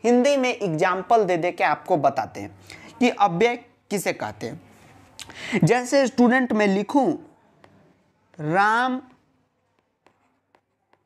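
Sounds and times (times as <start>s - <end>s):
stylus tapping on tablet screen: 7.6s - 11.0s.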